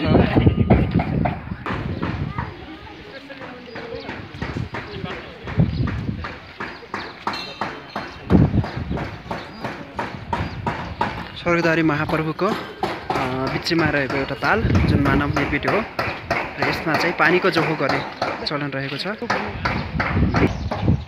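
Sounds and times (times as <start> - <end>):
footsteps on wet stone: 0.8 - 20.6.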